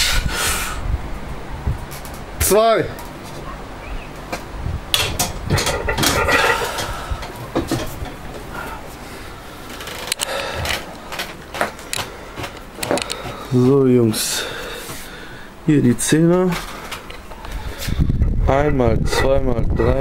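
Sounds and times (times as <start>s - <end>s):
man breathing hard: 0.0s - 0.9s, 6.3s - 7.5s, 8.5s - 11.0s, 12.0s - 15.6s, 16.6s - 18.4s
barbell metal clanks: 5.0s - 8.2s
clicks and handling noises: 9.7s - 13.4s.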